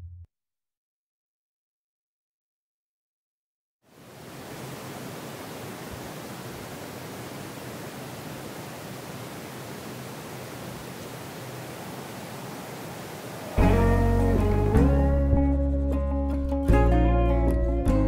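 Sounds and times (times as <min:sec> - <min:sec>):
guitar-led music: 0:13.6 - 0:18.0.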